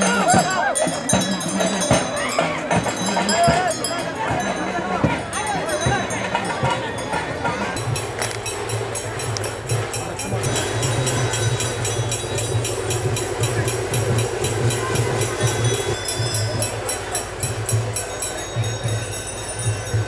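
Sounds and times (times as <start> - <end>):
fast rhythmic percussion: 0.0 - 20.0
pulsing low drum: 0.0 - 20.0.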